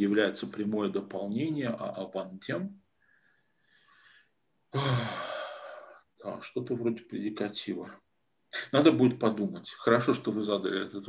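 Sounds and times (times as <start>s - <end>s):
man sighing: 4.7s - 6.0s.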